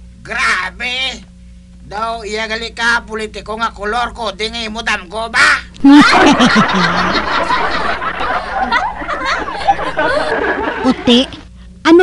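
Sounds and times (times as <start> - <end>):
people laughing: 5.8 - 11.4.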